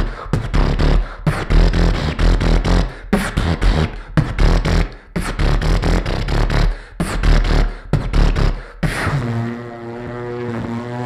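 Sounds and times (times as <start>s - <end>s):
beatboxing into microphone: 0.0s - 11.0s.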